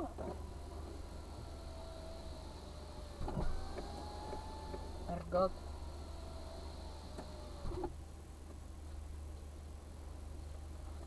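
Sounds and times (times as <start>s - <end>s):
car engine idling: 0.0s - 9.1s.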